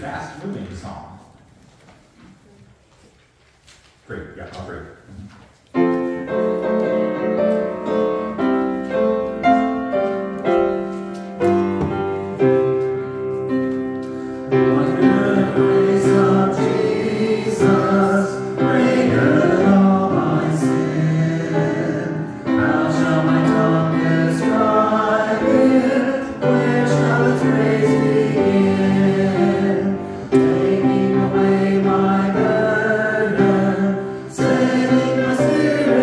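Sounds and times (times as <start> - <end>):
upright piano playing hymn chords: 5.7 - 36.0.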